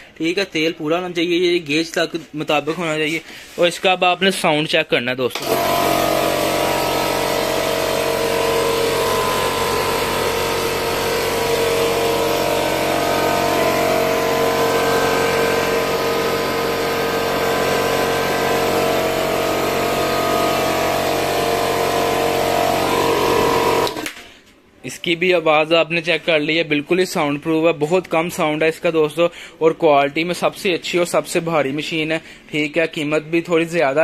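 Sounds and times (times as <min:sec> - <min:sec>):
air compressor running: 0:05.3 - 0:24.5.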